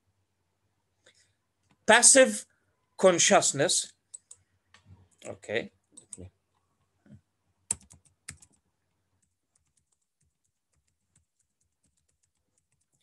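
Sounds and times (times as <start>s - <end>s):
computer keyboard typing: 4.1s - 4.5s, 7.7s - 8.6s, 9.2s - 13.0s.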